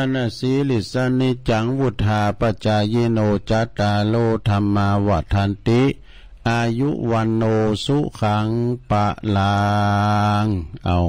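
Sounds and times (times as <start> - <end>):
man chanting in a low voice: 0.0 - 11.0.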